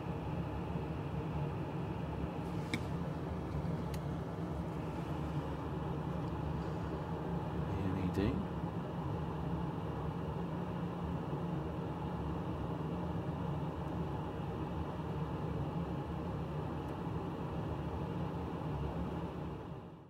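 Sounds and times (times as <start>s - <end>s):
low hum with hiss: 0.0s - 20.0s.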